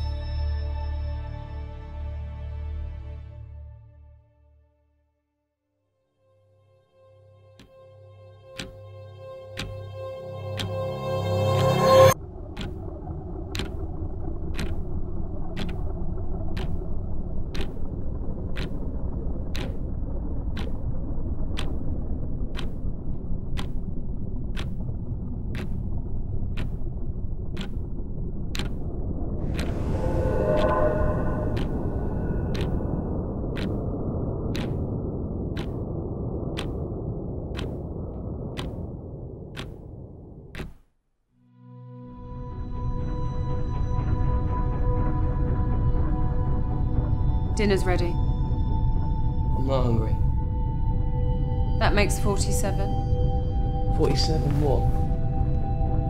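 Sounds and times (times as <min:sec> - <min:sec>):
sharp repeating tick: 0:08.6 - 0:08.9, 0:09.5 - 0:10.8, 0:12.6 - 0:12.8, 0:13.5 - 0:13.8, 0:14.5 - 0:16.9, 0:17.5 - 0:18.9, 0:19.5 - 0:19.9, 0:20.5 - 0:20.9, 0:21.5 - 0:21.8, 0:22.5 - 0:24.9, 0:25.5 - 0:28.9, 0:29.5 - 0:40.8
deep spacecraft rumble: 0:09.3 - 0:40.6, 0:42.2 - 0:56.0
higher tones: 0:29.4 - 0:33.5.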